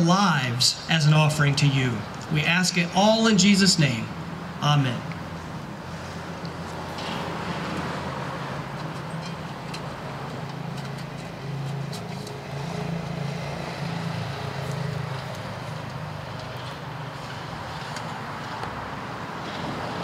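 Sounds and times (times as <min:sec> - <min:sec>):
motor vehicle rumbling: 0:00.0 - 0:20.0.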